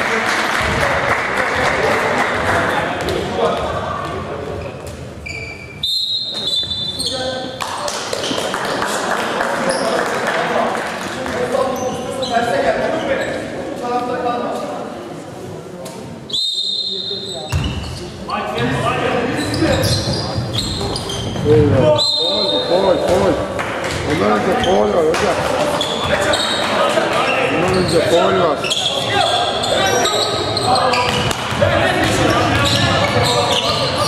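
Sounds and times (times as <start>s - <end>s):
players calling out: 18.6s - 34.0s.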